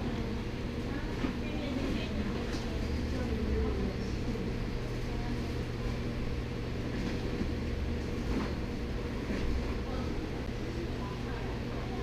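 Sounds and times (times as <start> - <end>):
faint voices: 0.0 - 12.0
steady low hum: 0.0 - 12.0.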